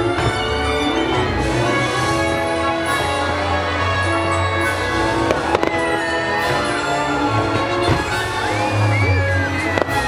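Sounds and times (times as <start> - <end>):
fireworks launching and bursting: 0.0 - 1.1, 5.2 - 10.0
loud soundtrack music: 0.0 - 10.0
sharp firework bangs: 7.8 - 8.4.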